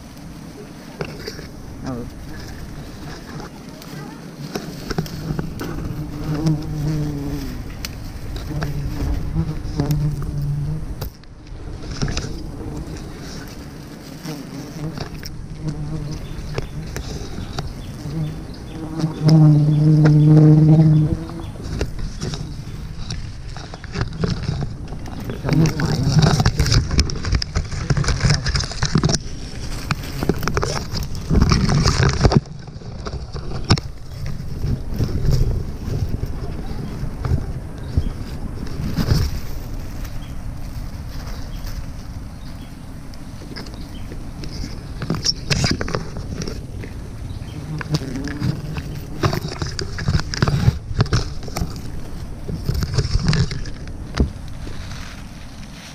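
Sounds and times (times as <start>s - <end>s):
bees buzzing: 0.0s - 40.5s, 42.3s - 54.4s
rustling: 0.0s - 55.9s.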